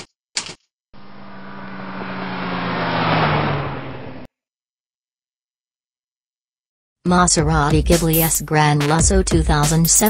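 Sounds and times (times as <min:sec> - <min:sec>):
car engine driving by: 0:01.0 - 0:04.3.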